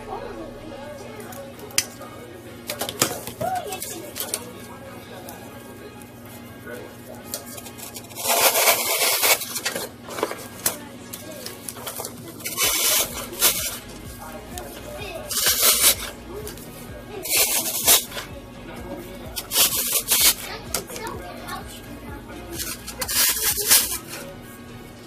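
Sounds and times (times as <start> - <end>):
plastic leaves rustling: 1.1 - 18.3, 19.3 - 24.4.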